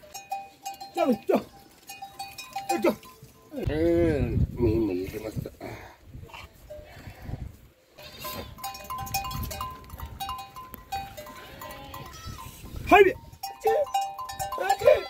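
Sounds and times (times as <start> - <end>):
goats bleating: 11.2 - 12.6, 14.6 - 15.0.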